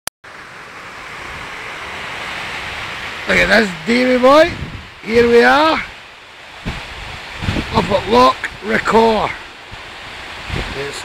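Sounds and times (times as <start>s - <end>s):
water rushing from spillway: 0.2s - 11.0s
wind noise on microphone: 2.6s - 11.0s.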